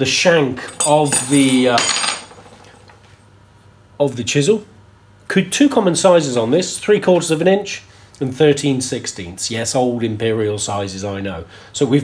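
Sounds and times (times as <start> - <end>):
faint metal handling: 0.6 - 3.0.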